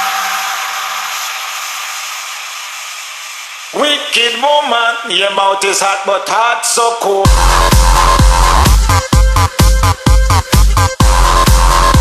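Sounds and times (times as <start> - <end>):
electro house music: 0.0 - 12.0.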